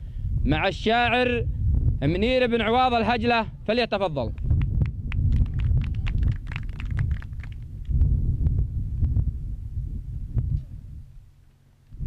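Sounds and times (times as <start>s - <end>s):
low rumbling thumps: 4.3s - 11.2s.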